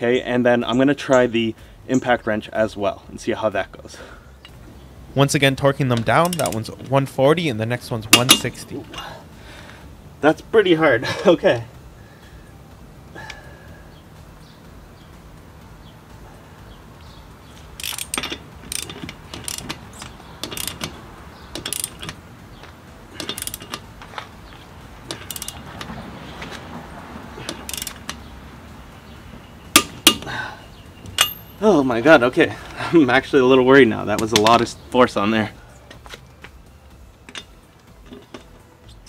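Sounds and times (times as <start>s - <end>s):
ratchet wrench clicking: 5.9s - 6.8s, 8.1s - 9.1s, 17.6s - 22.2s, 23.1s - 26.6s, 27.3s - 28.3s, 29.7s - 30.3s, 31.0s - 31.6s.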